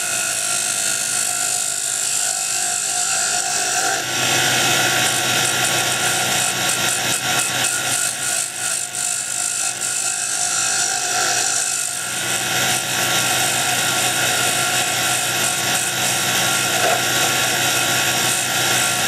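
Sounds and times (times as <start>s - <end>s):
wood lathe motor hum: 0.0s - 19.0s.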